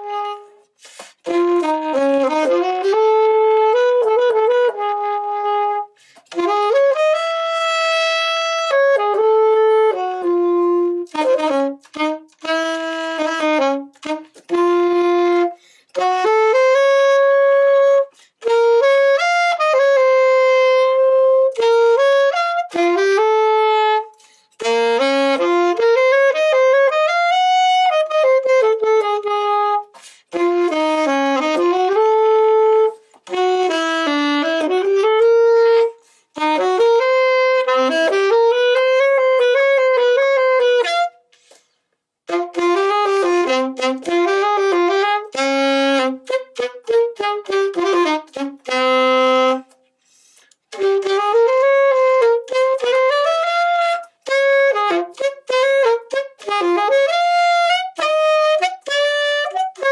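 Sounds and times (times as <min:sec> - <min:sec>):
alto saxophone melody: 0:00.0 - 0:59.9.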